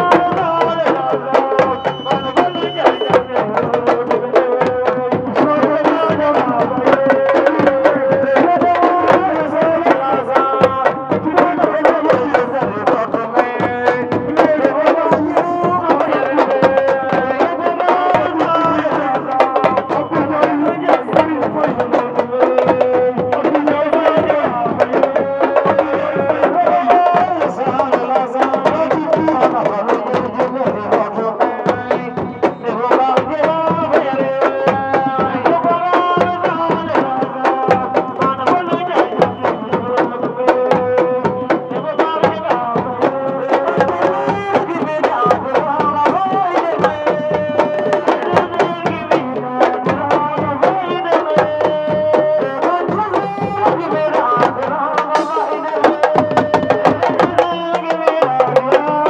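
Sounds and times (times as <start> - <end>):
drum ensemble playing fast rhythms: 0.0 - 59.0.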